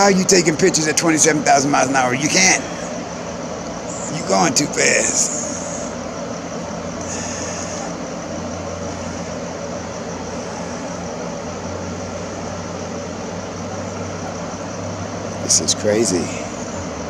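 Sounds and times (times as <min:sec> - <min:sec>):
high-pitched whine: 0:00.0 - 0:17.0
low mechanical hum: 0:00.0 - 0:17.0.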